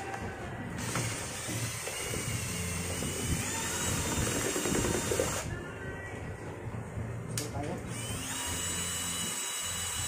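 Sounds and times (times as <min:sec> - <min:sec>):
cordless drill whining: 0:00.8 - 0:05.6, 0:07.9 - 0:10.0.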